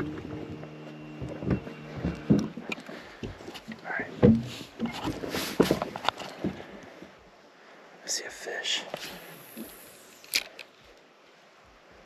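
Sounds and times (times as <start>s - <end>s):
steady low hum: 0.0s - 6.9s
knocks and thumps on a boat: 0.0s - 7.2s.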